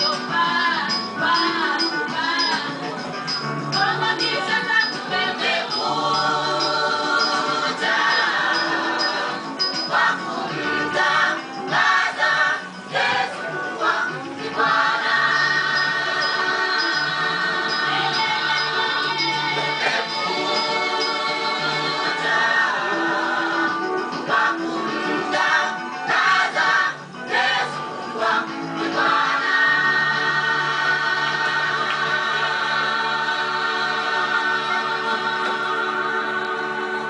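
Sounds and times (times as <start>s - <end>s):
choir singing a sustained chord: 3.8s - 37.0s.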